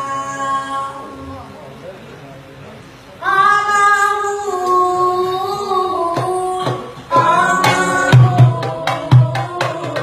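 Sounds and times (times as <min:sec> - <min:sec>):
boy singing into a microphone: 0:00.0 - 0:01.4, 0:03.2 - 0:10.0.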